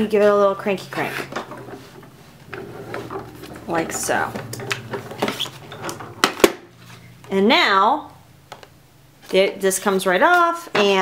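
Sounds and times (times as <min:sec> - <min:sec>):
metal plates clacking and knocking: 0:01.3 - 0:06.8.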